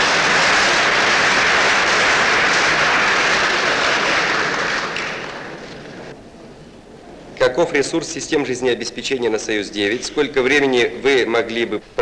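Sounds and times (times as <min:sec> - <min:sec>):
large audience applauding: 0:00.0 - 0:06.1.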